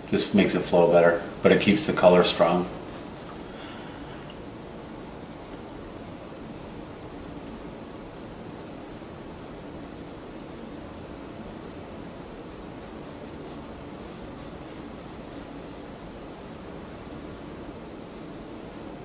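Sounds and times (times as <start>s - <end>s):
room tone hiss: 0.0s - 19.0s.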